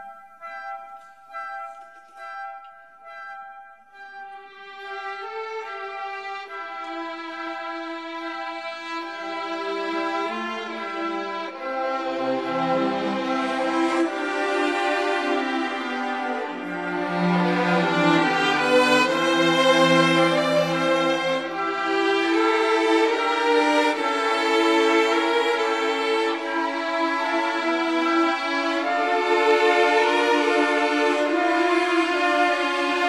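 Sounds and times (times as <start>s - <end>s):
violins holding a long note: 4.2s - 33.0s.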